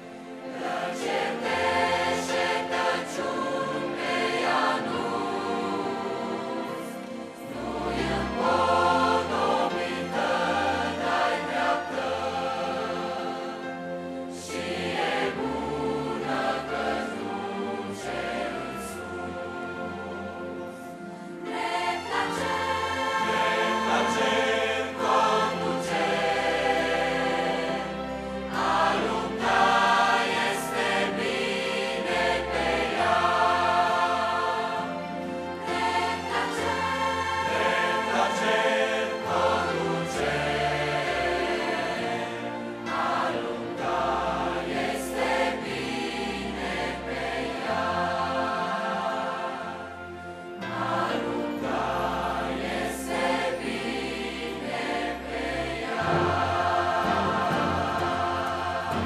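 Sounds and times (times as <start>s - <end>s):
youth choir singing a hymn: 0.0s - 59.0s.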